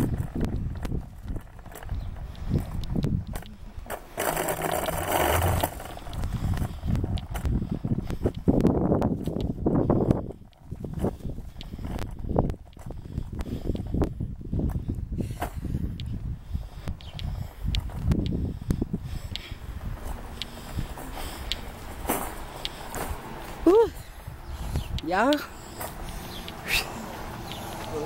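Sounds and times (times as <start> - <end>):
footsteps on concrete: 16.8 - 28.0.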